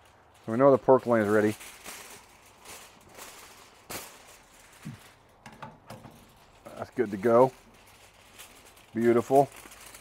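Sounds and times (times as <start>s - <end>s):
aluminium foil crackling: 0.0s - 10.0s.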